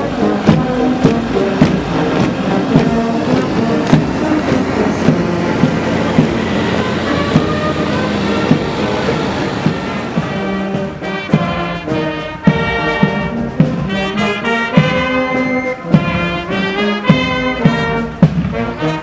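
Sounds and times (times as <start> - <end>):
brass band playing march: 0.0 - 19.0
marching footsteps on road: 0.0 - 19.0
steady drum beat: 0.0 - 19.0.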